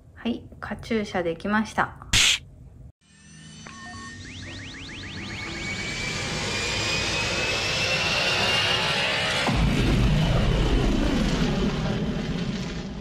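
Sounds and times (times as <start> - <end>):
rising whoosh with whistle: 3.2 - 9.5.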